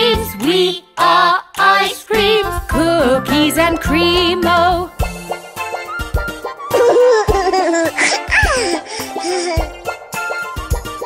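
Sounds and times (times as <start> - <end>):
children's song music: 0.0 - 11.0
cartoon children laughing: 6.7 - 9.7.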